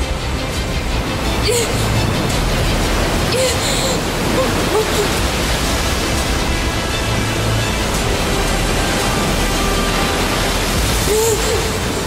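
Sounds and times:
ocean surf: 0.0s - 12.0s
soft background music: 0.0s - 12.0s.

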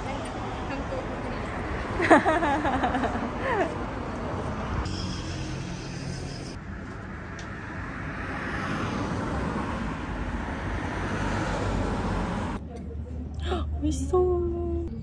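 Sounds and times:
road traffic passing: 0.0s - 15.0s.

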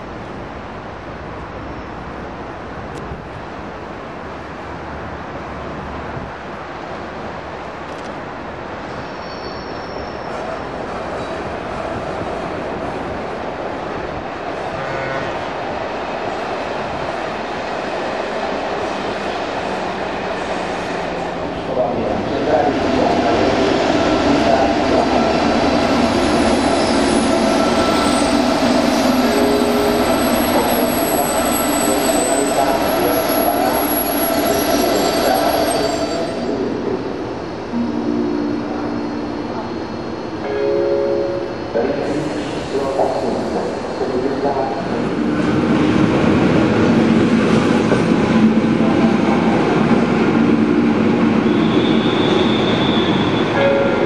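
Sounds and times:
electric locomotive running past: 8.4s - 54.0s
wheel squeal: 51.5s - 53.5s.

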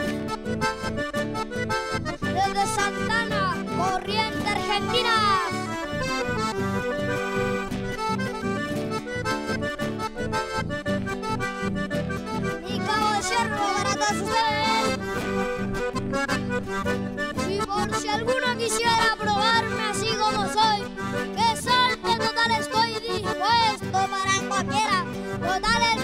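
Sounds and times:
acoustic guitar strumming: 0.0s - 26.0s
button accordion playing: 0.0s - 26.0s.

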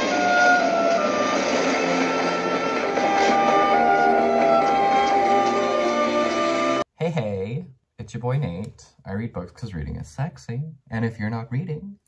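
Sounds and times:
freight train rattling past: 0.0s - 5.9s
orchestral strings: 0.0s - 6.8s.

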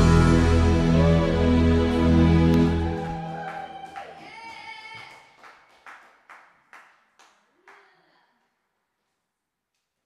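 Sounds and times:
backing music chord: 0.0s - 3.8s
sharp hand claps: 2.5s - 7.9s.

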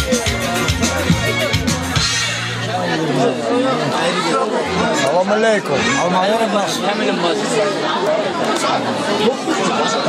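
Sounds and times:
men chattering: 0.0s - 10.0s.

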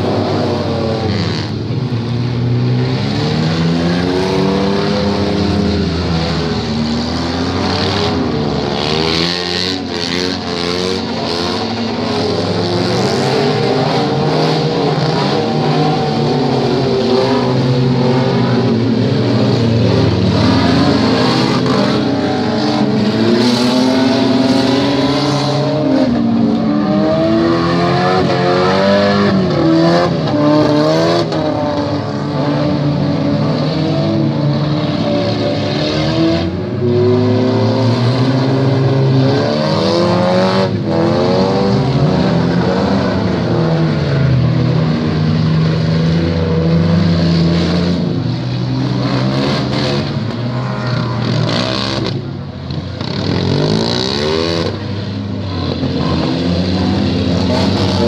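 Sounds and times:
car engines revving: 0.0s - 58.0s.

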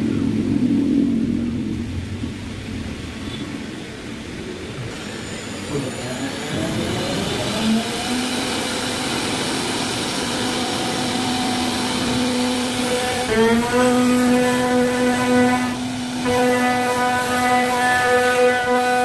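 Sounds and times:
router bit cutting wood: 4.9s - 19.0s
router spindle whine: 4.9s - 19.0s.

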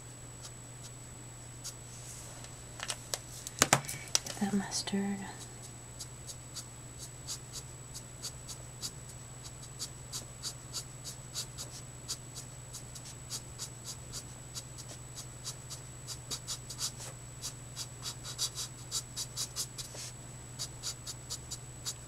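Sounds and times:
marker scratching across paper: 6.0s - 22.0s.

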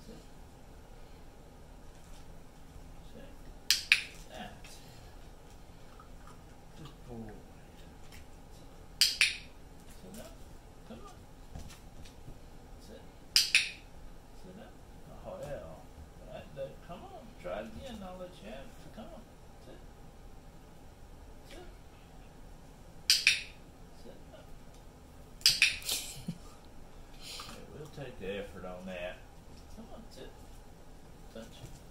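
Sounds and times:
sharp clicks: 3.7s - 4.2s, 9.0s - 9.5s, 13.4s - 13.8s, 23.1s - 23.5s, 25.4s - 25.9s.

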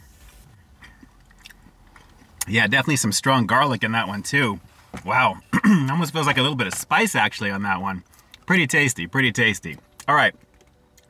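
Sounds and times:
person chewing fried chicken: 0.8s - 2.5s.

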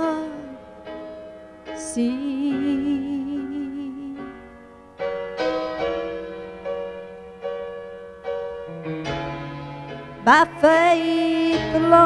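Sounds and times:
person singing gospel ballad: 0.0s - 0.6s, 1.8s - 4.3s, 10.2s - 12.0s
piano accompaniment: 0.0s - 12.0s.

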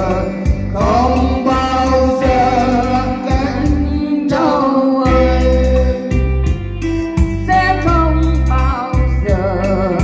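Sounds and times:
person singing into microphone: 0.0s - 6.4s, 7.4s - 10.0s
electronic keyboard accompaniment: 0.0s - 10.0s.

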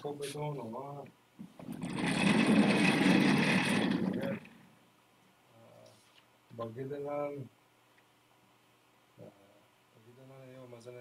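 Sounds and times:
chair casters rolling on hard floor: 1.6s - 4.5s.

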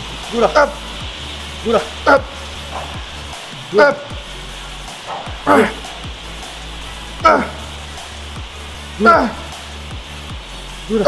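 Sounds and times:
background music: 0.0s - 11.0s
man shouting with effort: 0.3s - 0.8s, 1.7s - 2.4s, 3.7s - 4.2s, 5.4s - 5.8s, 7.2s - 7.8s, 9.0s - 9.5s.

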